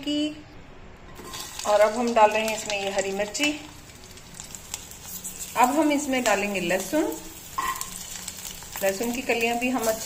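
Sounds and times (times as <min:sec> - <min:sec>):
chillies sizzling in frying pan: 0:01.2 - 0:10.0.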